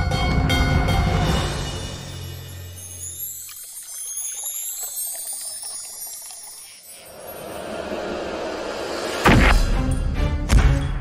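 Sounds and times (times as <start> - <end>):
high shimmering tones: 1.8 - 9.1
liquid pouring in thin stream: 2.8 - 7.5.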